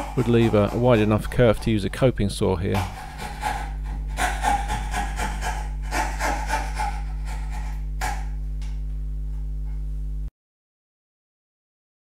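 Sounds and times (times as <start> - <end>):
fret saw cutting wood: 0.0 - 1.6, 2.8 - 8.3
steady low hum: 0.0 - 10.3.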